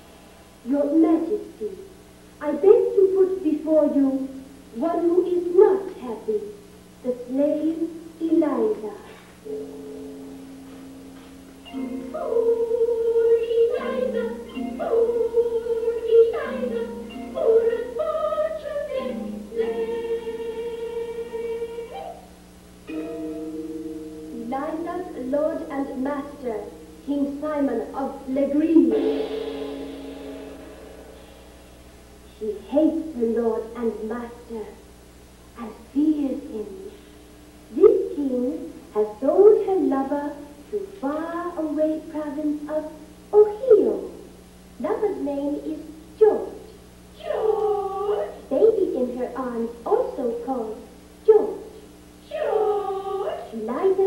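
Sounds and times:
person giving howl-like call: 47.2 - 48.5, 52.3 - 53.6
person singing a long high note: 47.2 - 48.5, 52.3 - 53.6.

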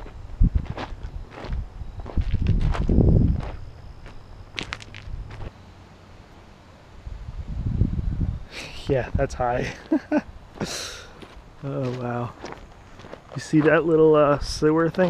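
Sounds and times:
low rumble: 0.0 - 5.5
footsteps on gravel: 0.0 - 5.6, 10.6 - 15.0.

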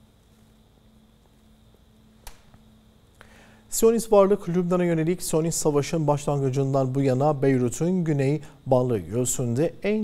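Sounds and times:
faint steady hum: 0.0 - 10.0
sharp click: 2.2 - 2.6.

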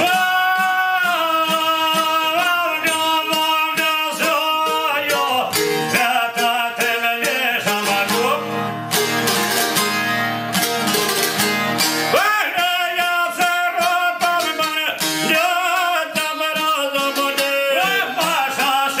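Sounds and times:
man singing: 0.0 - 9.1, 12.1 - 19.0
plucked lutes: 0.0 - 19.0.

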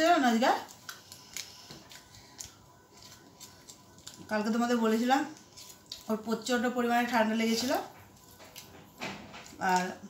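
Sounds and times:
woman speaking: 0.0 - 0.7, 4.3 - 5.4, 6.1 - 8.0, 9.6 - 10.0
foil wrapper crinkling: 0.0 - 10.0.

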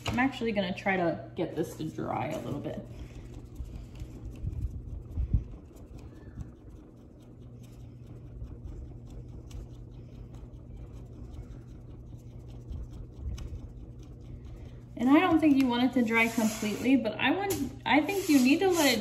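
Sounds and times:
low room hum: 0.0 - 19.0.

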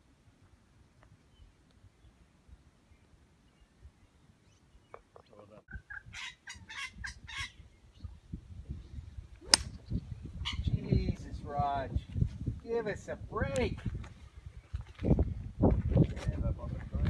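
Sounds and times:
bird-like calls: 2.9 - 8.2
golf club striking ball: 9.4 - 9.8.

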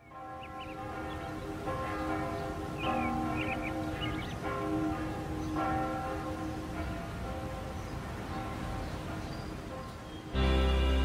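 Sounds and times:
church bells ringing: 0.0 - 11.0.

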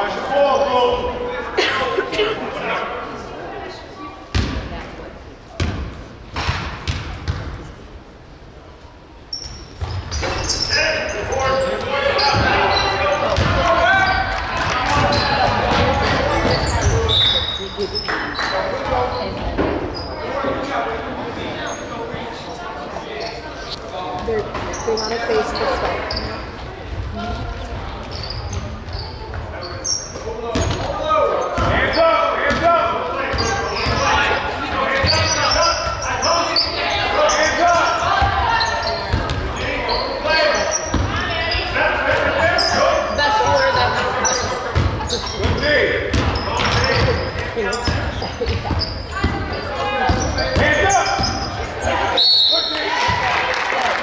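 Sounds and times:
calls of players and spectators: 0.0 - 54.0
sneakers squeaking: 4.0 - 4.7, 5.5 - 7.8, 9.2 - 53.3
basketball bouncing on hardwood floor: 6.5 - 7.5, 13.4 - 13.6, 44.8 - 47.2
referee's whistle blast: 52.1 - 52.8.

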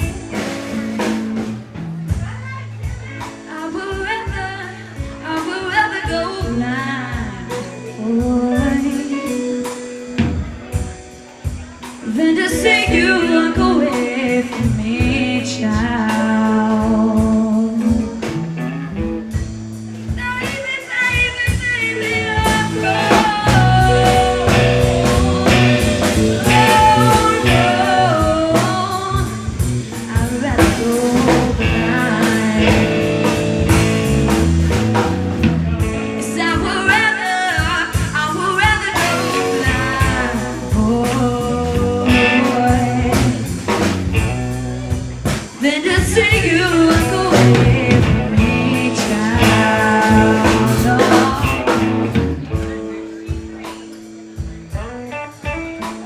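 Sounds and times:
bass guitar: 0.0 - 56.0
drum kit: 0.0 - 56.0
electric guitar: 0.0 - 56.0
woman singing: 2.2 - 10.4, 12.0 - 18.3, 20.1 - 33.8, 36.2 - 44.0, 45.6 - 52.2
drum kit hits: 22.4 - 36.7.

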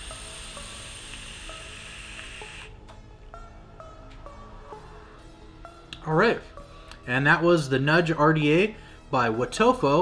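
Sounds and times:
soft plucked background music: 0.0 - 10.0.

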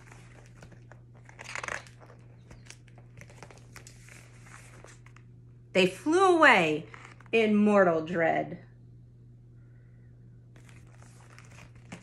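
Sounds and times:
paper rustling and crinkling: 0.0 - 5.3, 10.6 - 12.0.

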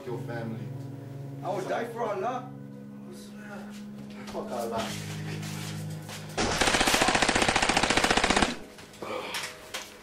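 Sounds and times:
rapid automatic gunfire: 6.4 - 8.7.

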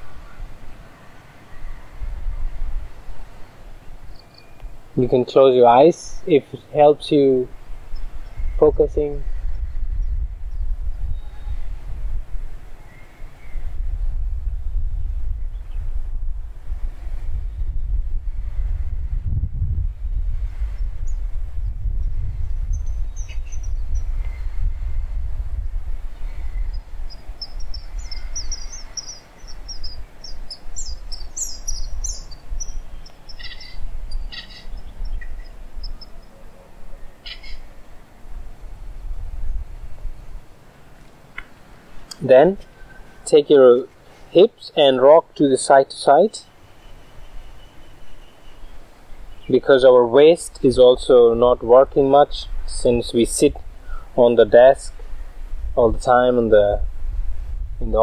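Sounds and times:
birds chirping: 0.0 - 11.8, 12.6 - 13.8, 20.8 - 25.0, 26.0 - 38.3, 41.0 - 55.0
steady low rumble: 6.0 - 40.8, 50.6 - 58.0.

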